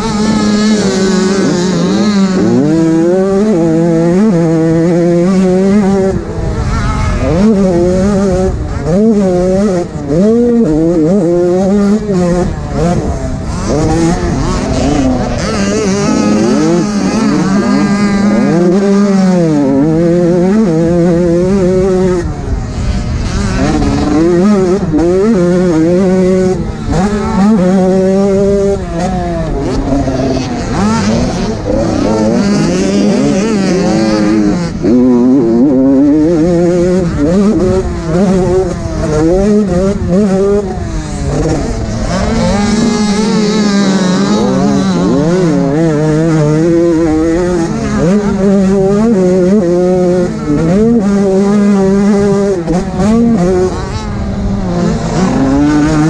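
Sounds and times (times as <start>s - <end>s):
motocross bike engine revving: 0.0s - 56.0s.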